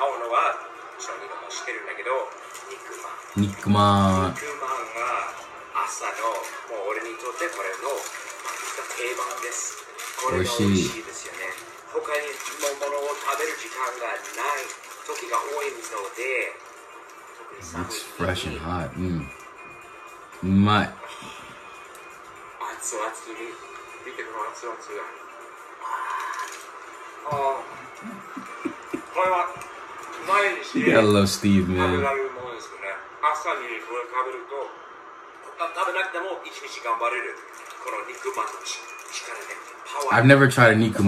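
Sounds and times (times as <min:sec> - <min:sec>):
light background music: 0:00.0 - 0:41.0
man talking thin voice: 0:03.4 - 0:04.4, 0:10.2 - 0:11.1, 0:17.7 - 0:19.3, 0:20.4 - 0:21.0, 0:30.7 - 0:32.1
second man speaking: 0:03.4 - 0:04.4, 0:10.2 - 0:11.1.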